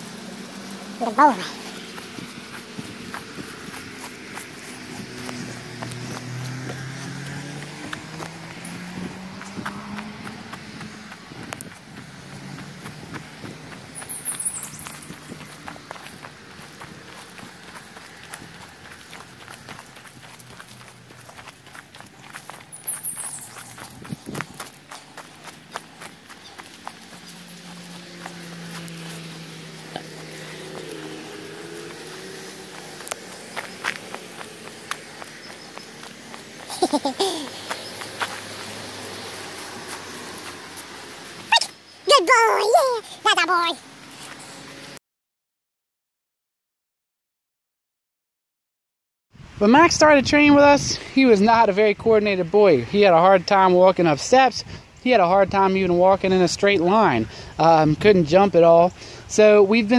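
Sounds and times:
footsteps outdoors: 0:00.0 - 0:45.0, 0:49.4 - 0:59.9.

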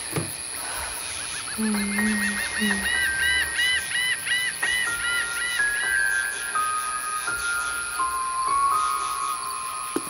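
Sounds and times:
high-pitched hiss: 0:00.0 - 0:10.0
repeating chirp-like tone: 0:01.2 - 0:10.0.

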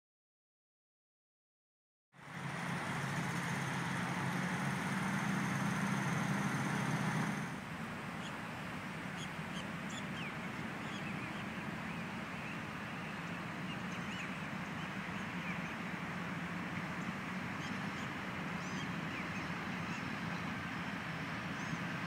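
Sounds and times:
road traffic rumble: 0:02.2 - 0:22.0.

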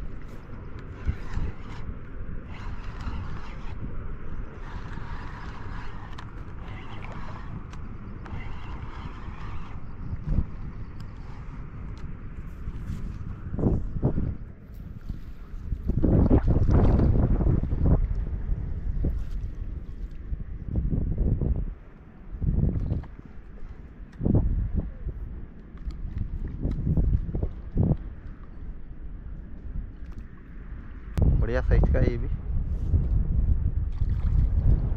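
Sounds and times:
wind buffeting microphone: 0:00.0 - 0:34.9.

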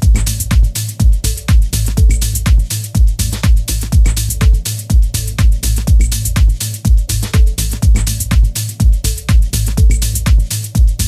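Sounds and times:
electronic dance music: 0:00.0 - 0:11.0
steady kick drum: 0:00.0 - 0:11.0.

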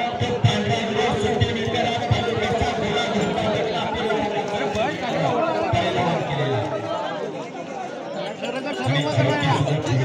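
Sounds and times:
crowd of men chattering: 0:00.0 - 0:10.0.

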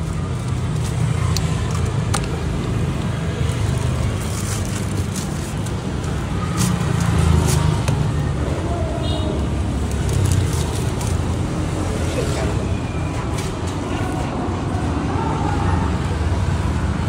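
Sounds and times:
low rumble of road traffic: 0:00.0 - 0:17.0
plastic bag crinkling: 0:03.4 - 0:07.7.

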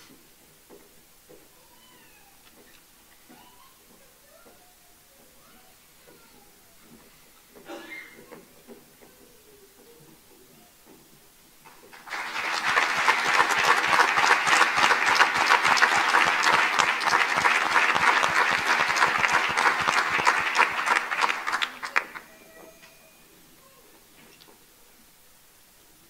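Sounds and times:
crowd applauding: 0:11.9 - 0:22.7.

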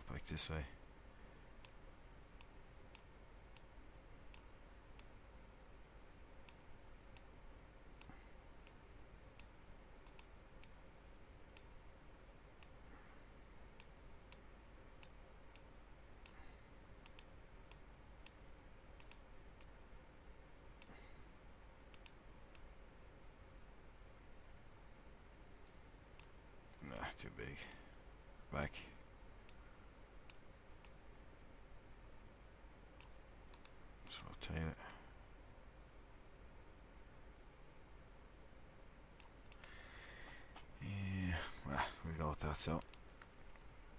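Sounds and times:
faint room noise: 0:00.0 - 0:43.9
computer mouse clicks: 0:09.4 - 0:10.8, 0:11.5 - 0:11.7, 0:17.0 - 0:18.4, 0:19.0 - 0:19.8, 0:21.9 - 0:22.7, 0:33.0 - 0:34.3, 0:39.2 - 0:39.8, 0:42.8 - 0:43.3.

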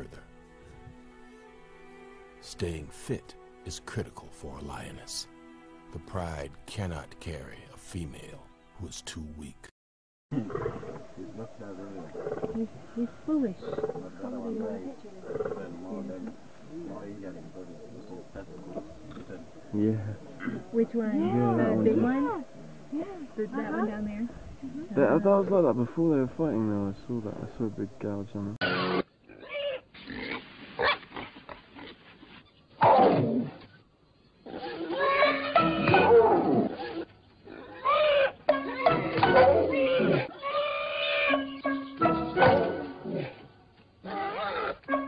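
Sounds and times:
people talking quietly: 0:10.3 - 0:28.6
warthog squealing and grunting: 0:28.6 - 0:32.0, 0:34.4 - 0:43.4, 0:44.0 - 0:45.0.

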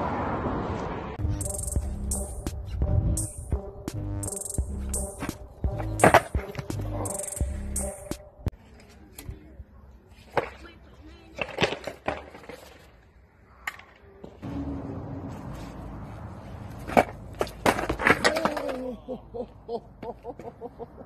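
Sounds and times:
skateboard clattering on concrete: 0:11.3 - 0:12.8, 0:16.8 - 0:18.8.

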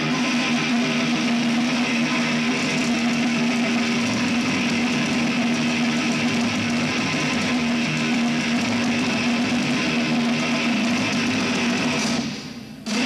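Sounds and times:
distorted electric guitars: 0:00.0 - 0:13.0
thrash metal band playing live: 0:00.0 - 0:13.0.

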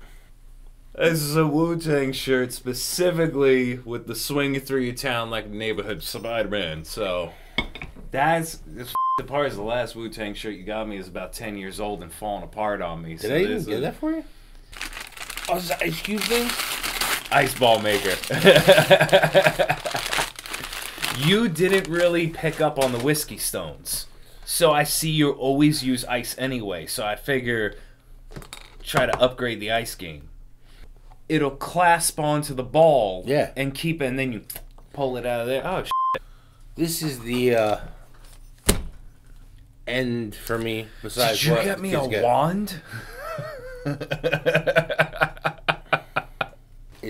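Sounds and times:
gift wrapping crinkling: 0:14.7 - 0:23.4
laughter: 0:18.3 - 0:20.1, 0:42.9 - 0:46.6.

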